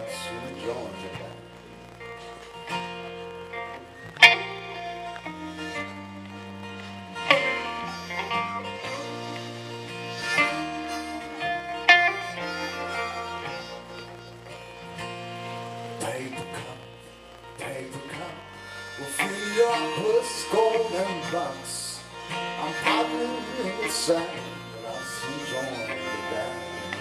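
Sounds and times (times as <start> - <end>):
electric bass: 0.0 - 27.0
electric guitar: 0.0 - 27.0
harmonica playing: 0.0 - 27.0.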